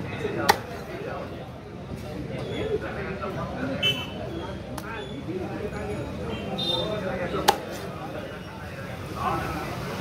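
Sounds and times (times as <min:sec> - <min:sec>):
cleaver chopping onto wooden block: 0:00.4 - 0:00.8, 0:07.4 - 0:07.8.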